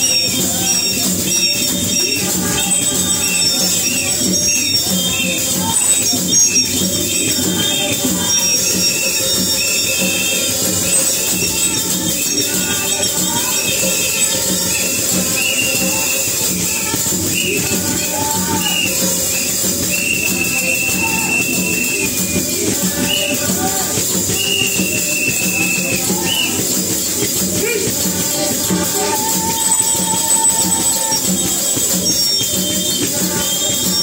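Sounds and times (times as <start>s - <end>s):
large hide drum beat: 0.0s - 34.0s
rattling percussion: 0.0s - 34.0s
voices singing worship music: 0.0s - 34.0s.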